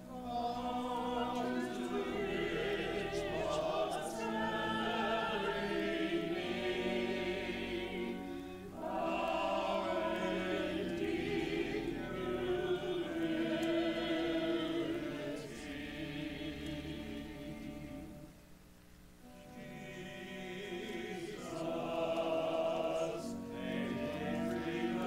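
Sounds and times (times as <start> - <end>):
choir singing: 0.0 - 18.3, 19.3 - 25.0.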